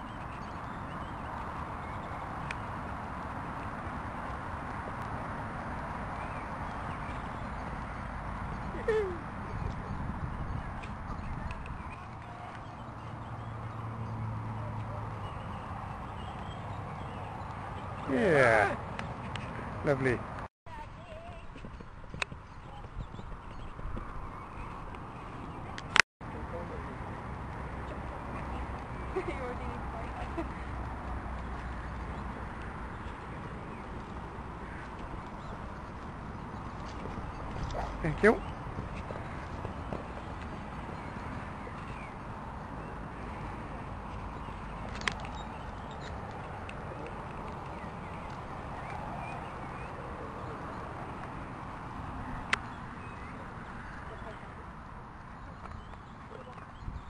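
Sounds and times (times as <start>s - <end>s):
wind noise on microphone: 6.5s - 12.2s, 20.8s - 26.0s, 56.7s - 57.0s.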